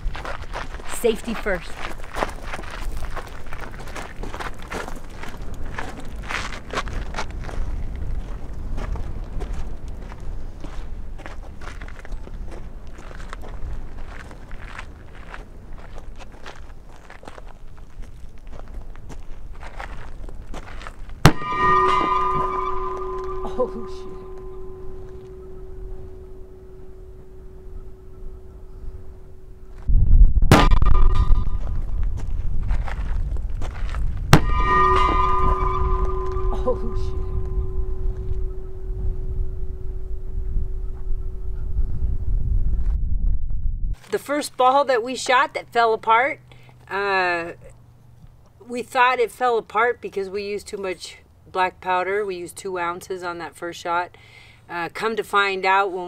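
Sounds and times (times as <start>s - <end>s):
wind buffeting microphone: 1.7s - 21.4s, 27.4s - 44.0s
steady ringing tone: 21.2s - 29.9s, 30.5s - 32.1s, 34.4s - 42.7s
cannon firing boom: 21.3s - 23.4s, 30.4s - 32.0s, 34.3s - 39.6s.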